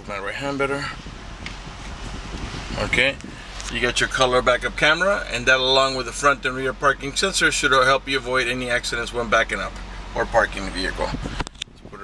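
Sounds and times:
air-conditioning fan hiss: 0.0 - 12.0
car engine idling hum: 0.0 - 12.0.

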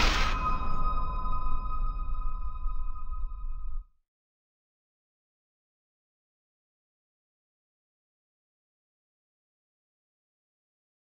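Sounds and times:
high ringing tone: 0.0 - 3.8.

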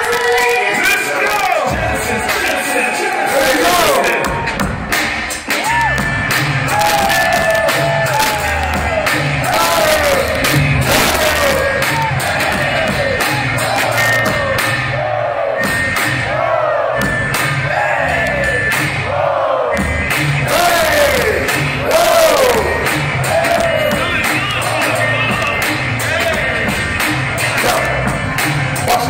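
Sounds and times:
crowd: 0.0 - 29.0
hip-hop music with heavy bass beat: 0.0 - 29.0.

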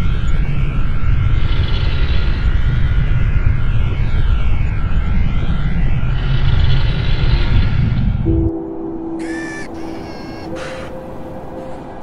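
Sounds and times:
low two-tone drone: 0.0 - 12.0
harsh pitched call: 9.1 - 11.1.

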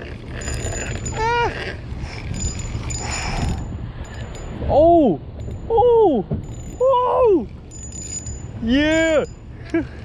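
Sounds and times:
spinning reel cranking: 0.0 - 4.6, 7.7 - 9.4
steady low rumble: 0.0 - 10.0.

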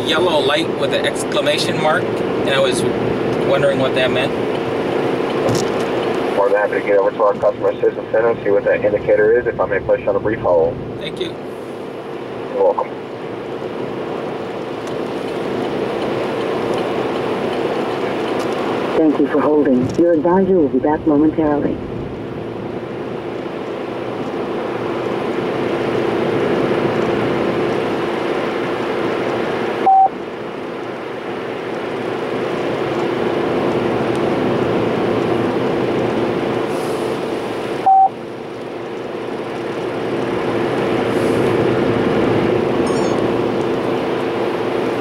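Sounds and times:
car road and engine noise: 0.0 - 45.0
short beeps through speakers: 29.8 - 30.2, 37.8 - 38.2, 42.9 - 43.2.

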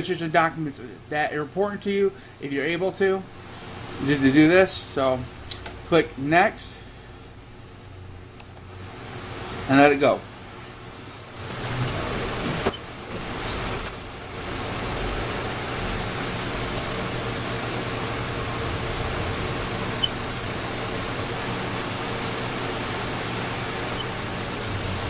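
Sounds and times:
fan-like rushing noise: 0.0 - 25.0
low hum: 11.4 - 25.0.

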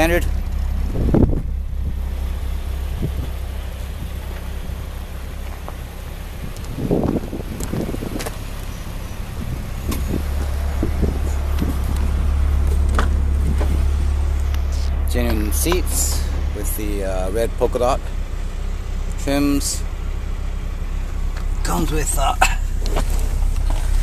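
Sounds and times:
car engine idling: 0.0 - 24.0.

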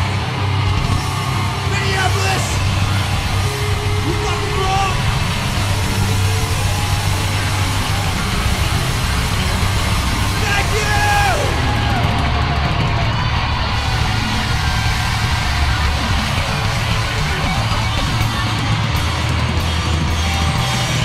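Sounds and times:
hard rock band playing: 0.0 - 21.0.

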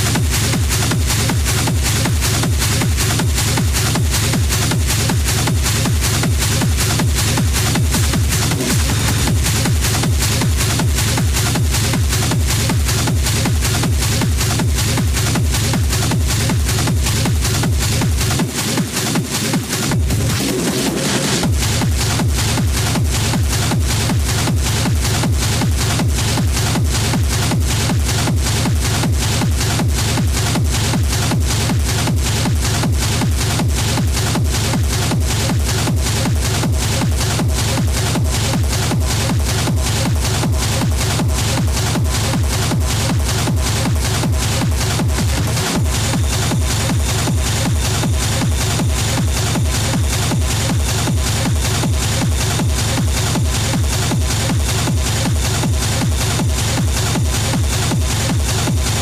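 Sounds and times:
hard techno: 0.0 - 59.0
steady kick drum: 0.0 - 59.0.

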